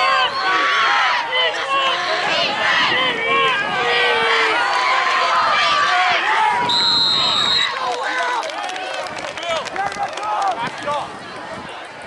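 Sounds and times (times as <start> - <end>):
crowd shouting and talking: 0.0 - 12.0.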